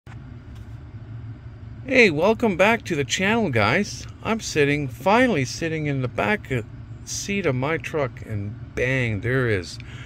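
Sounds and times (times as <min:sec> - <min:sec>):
pickup truck idling: 0:00.1 - 0:10.0.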